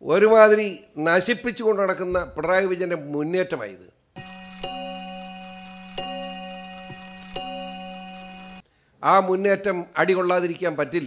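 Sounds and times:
bell-like chiming tone: 4.2 - 8.6.

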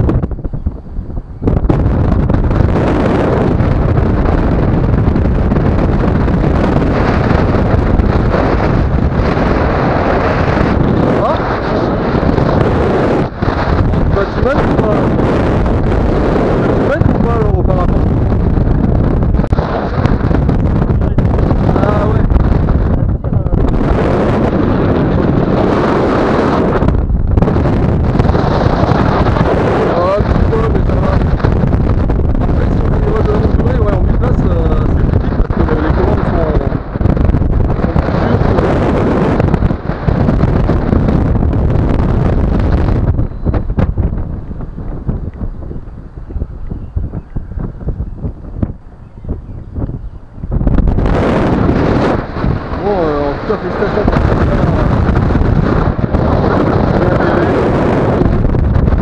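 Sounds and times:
airflow buffeting microphone: 0.0 - 59.0.

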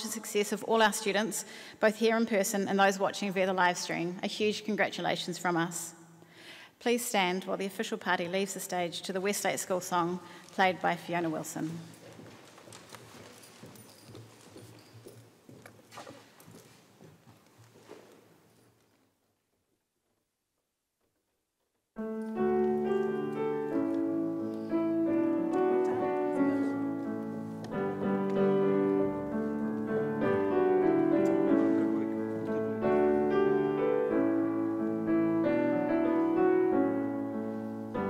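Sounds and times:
footsteps on hard floor: 10.6 - 19.1, 22.0 - 35.0
solo piano slow chords: 22.0 - 38.0.

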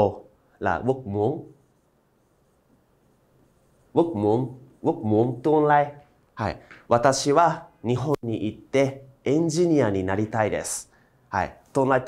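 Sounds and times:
man's voice: 0.0 - 1.6, 4.0 - 12.0.

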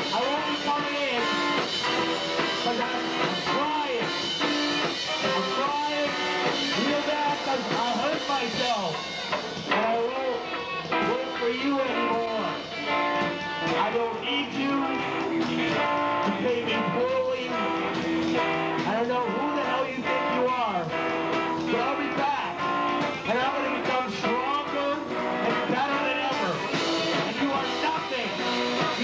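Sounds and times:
guitar bending notes: 0.0 - 29.0
rock band playing live: 0.0 - 29.0.

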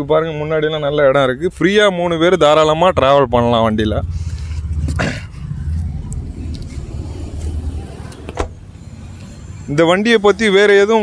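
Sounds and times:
low rumble: 3.0 - 9.5.

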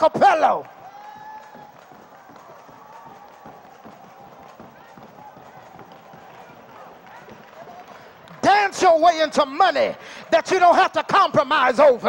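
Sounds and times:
feet stomping and shuffling: 0.7 - 8.5
faint voices and shouts: 0.7 - 10.6.

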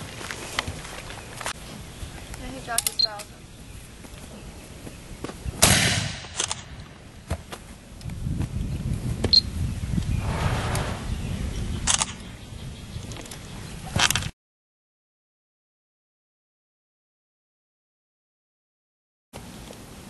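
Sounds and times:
low rumbling noise: 3.4 - 13.0
handgun shots: 5.6 - 6.8.

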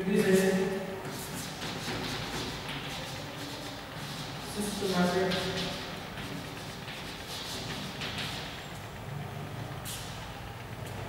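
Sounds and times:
chalk writing on a blackboard: 0.2 - 8.9, 9.8 - 10.2.

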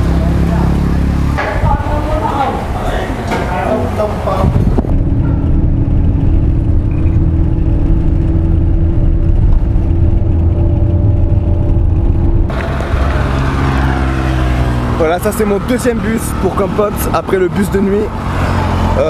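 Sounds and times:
engine and road noise in cabin: 0.0 - 19.0.

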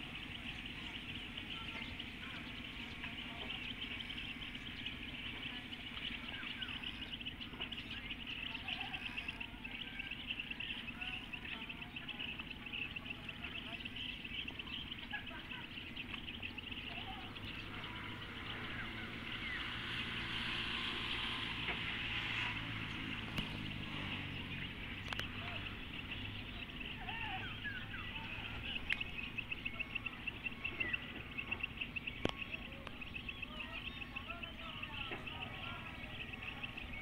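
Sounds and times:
bird chirps: 0.0 - 37.0
low engine hum: 0.0 - 37.0
sharp clicks: 28.9 - 29.2.

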